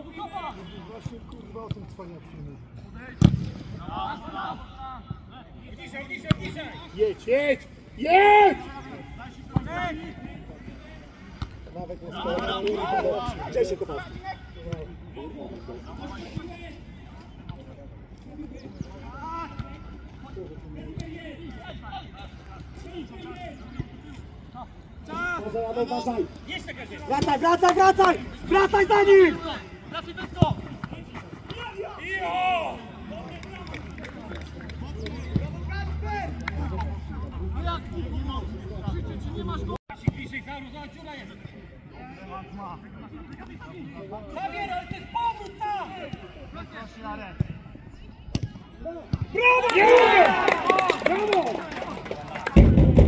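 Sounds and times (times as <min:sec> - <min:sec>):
distant shouts of players: 0:03.7 - 0:10.5, 0:44.4 - 0:52.7
players shouting: 0:03.8 - 0:10.5, 0:25.0 - 0:39.7, 0:48.6 - 0:52.7.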